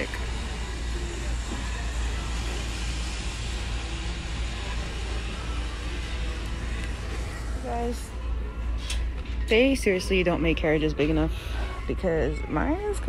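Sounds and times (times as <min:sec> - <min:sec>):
distant voices: 0:00.0 - 0:13.0
store background rumble and hiss: 0:00.0 - 0:13.0.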